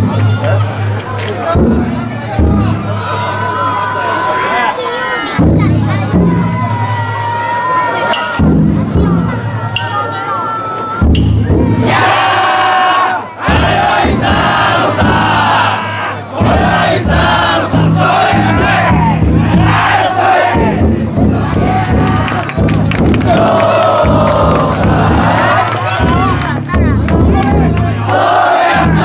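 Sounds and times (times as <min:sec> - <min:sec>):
crowd shouting together: 0:00.0 - 0:08.4, 0:09.2 - 0:29.0.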